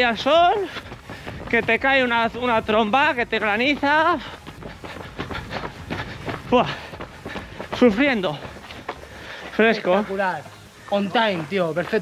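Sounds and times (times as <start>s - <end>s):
running footsteps on pavement: 0.0s - 12.0s
heavy breathing: 0.6s - 1.5s, 4.1s - 11.0s.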